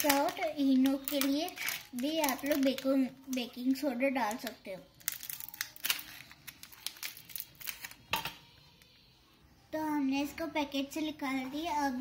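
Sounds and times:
scissors cutting plastic: 0.0 - 3.5, 4.2 - 8.4
plastic wrapper crinkling: 0.0 - 8.9.

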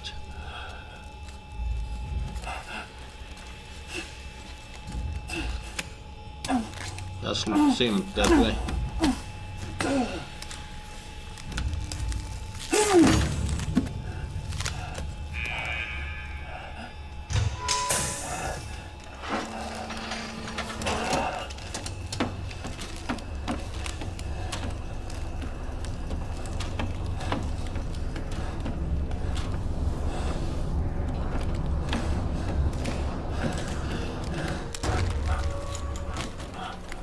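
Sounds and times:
deep steady rumble: 16.3 - 37.0.

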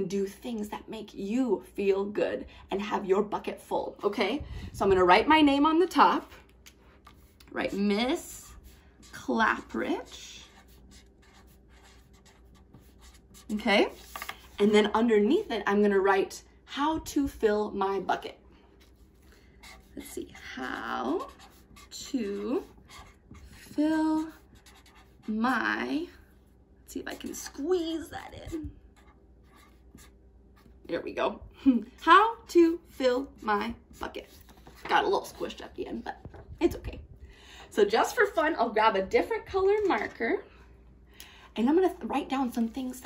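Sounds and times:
marker scratching on paper: 7.1 - 15.7, 18.8 - 25.5, 27.0 - 30.7, 32.9 - 35.6.

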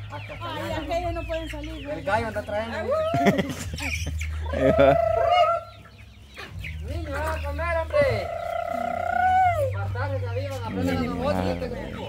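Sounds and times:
chickens clucking: 0.0 - 12.0
chicken wavering call: 3.0 - 5.9, 8.0 - 9.8.

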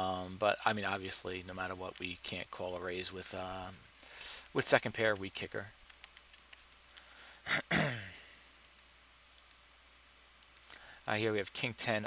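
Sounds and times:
computer mouse clicks: 5.8 - 7.0, 8.6 - 9.6, 10.4 - 10.8.

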